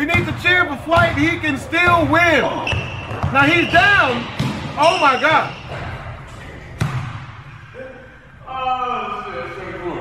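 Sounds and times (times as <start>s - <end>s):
basketball bouncing on court floor: 0.0s - 6.0s, 6.8s - 7.4s.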